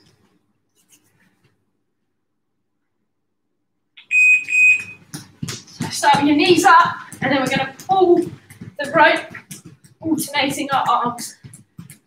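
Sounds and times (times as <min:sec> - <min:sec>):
electronic timer beeps: 0:04.0 - 0:05.0
footfalls on gym mat: 0:04.9 - 0:12.0.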